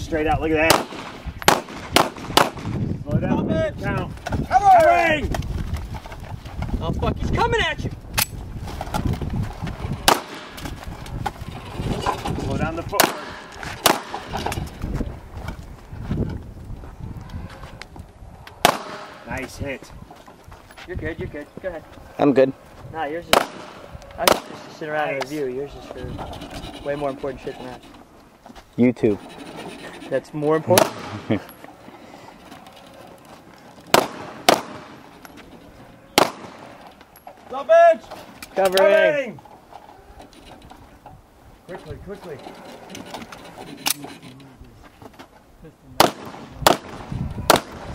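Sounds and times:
gunshot: 0.6 - 2.8, 10.0 - 10.6, 13.0 - 14.2, 18.6 - 19.3, 23.3 - 24.7, 30.7 - 31.3, 33.9 - 35.0, 36.2 - 36.7, 46.0 - 47.9.

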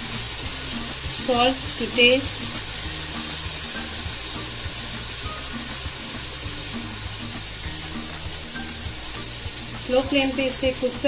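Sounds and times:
masala sizzling in a frying pan: 0.0 - 11.0
soft background music: 0.0 - 11.0.

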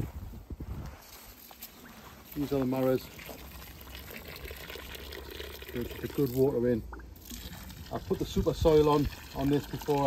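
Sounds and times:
water pouring onto soil: 1.1 - 10.0.

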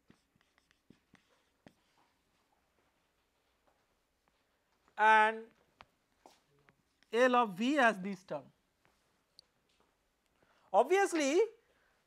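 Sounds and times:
marker writing on whiteboard: 0.0 - 3.0.

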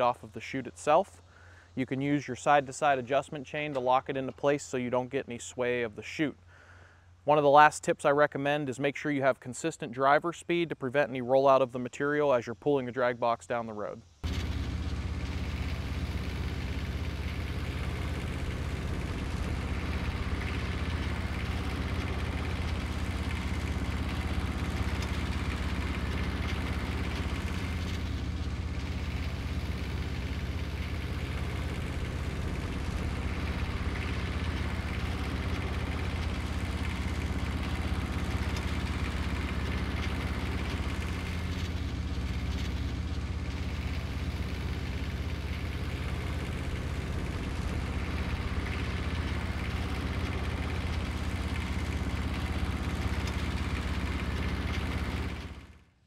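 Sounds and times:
machine engine humming low: 13.0 - 56.0.

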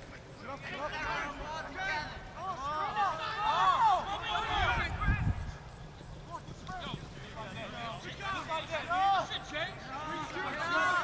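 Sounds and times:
players shouting: 0.1 - 11.0.

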